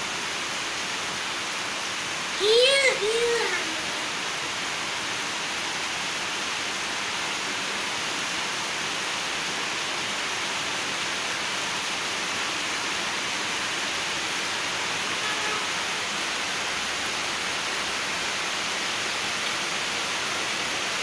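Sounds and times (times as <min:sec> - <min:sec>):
steady rain falling: 0:00.0 - 0:21.0.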